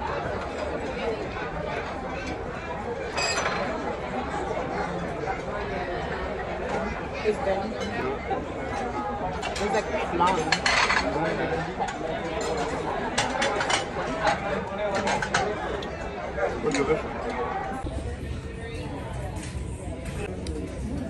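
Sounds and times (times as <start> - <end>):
many voices talking: 0.0 - 21.0
cutlery and dishes clinking: 3.1 - 3.8, 9.3 - 15.6.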